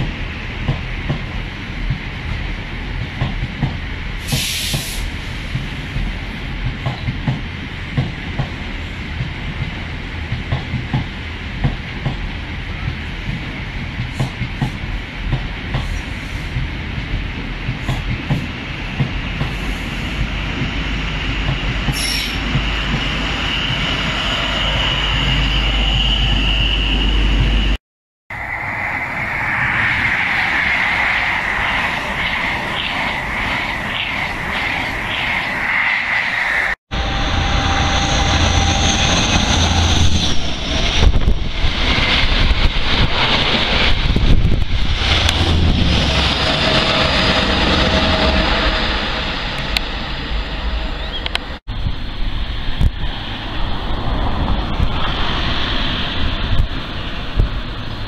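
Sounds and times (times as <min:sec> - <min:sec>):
train coaches rumbling: 0:00.0 - 0:58.0
train uneven bangs: 0:03.0 - 0:27.8
train wheel squeal: 0:19.2 - 0:43.9, 0:45.0 - 0:51.6.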